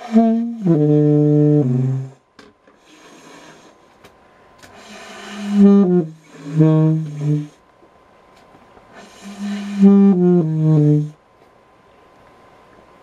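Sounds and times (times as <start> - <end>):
low reed woodwind notes: 0.0 - 2.2, 4.8 - 7.6, 9.0 - 11.2
hiss: 2.7 - 4.0, 4.6 - 7.6, 8.9 - 11.2.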